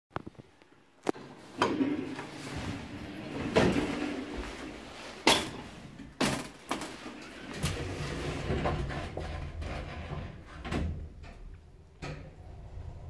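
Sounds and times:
elevator doors sliding open: 1.2 - 5.8, 6.9 - 13.0.

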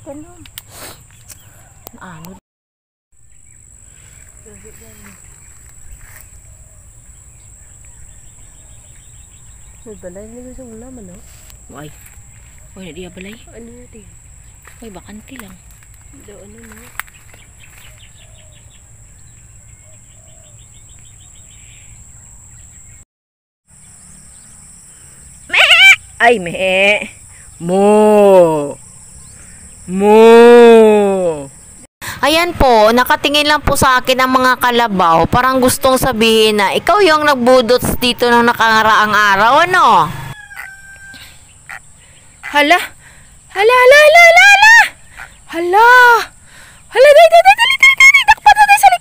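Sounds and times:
high insect drone: 3.2 - 23.0, 23.7 - 49.0
faint drawn-out fowl call: 40.2 - 41.8.

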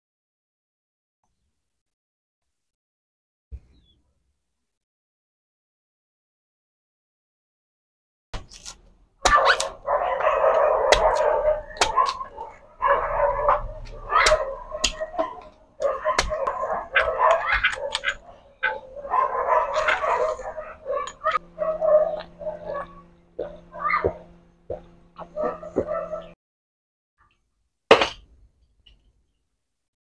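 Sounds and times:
blade chopping coconut: 8.4 - 9.8, 10.6 - 12.5
dog barking and whining: 9.2 - 26.4.

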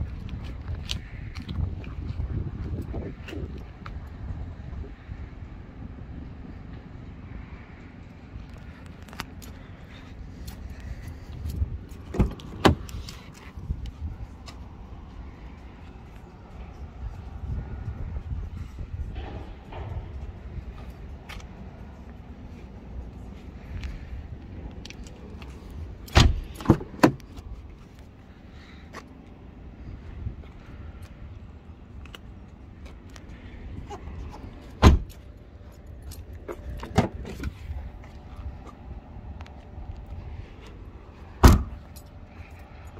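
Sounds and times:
car door shutting: 12.0 - 13.1, 26.1 - 27.2, 34.8 - 35.2, 41.4 - 41.8
car boot lid opening: 12.1 - 13.0, 26.1 - 27.2, 34.8 - 35.1, 41.4 - 41.8
car door handle and latch clicks: 12.1 - 13.1.

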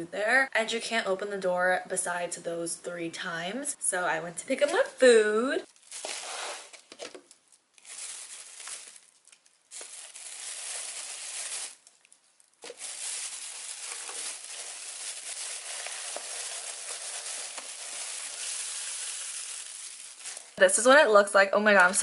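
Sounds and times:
plastic bag rustling: 5.6 - 20.6.

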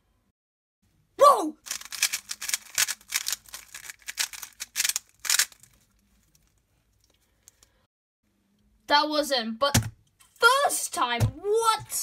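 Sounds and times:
speed cube clicking: 1.7 - 5.5.

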